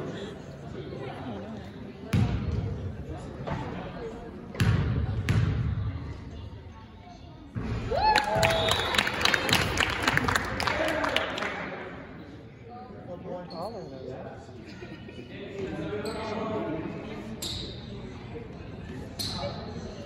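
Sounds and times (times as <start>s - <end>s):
spectators shouting and clapping: 7.8s - 11.6s.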